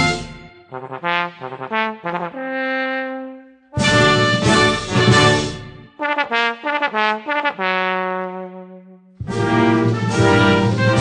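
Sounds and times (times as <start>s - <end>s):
brass music: 0.0s - 11.0s.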